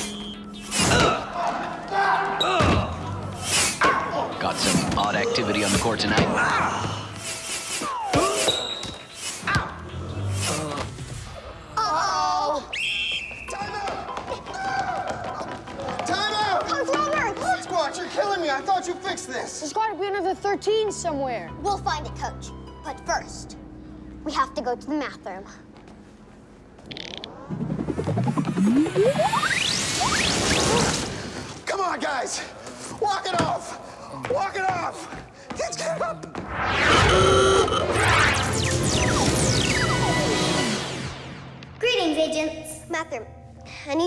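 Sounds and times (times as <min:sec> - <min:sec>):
rising ratchet-like teleport buzz: 0:26.9 - 0:30.9.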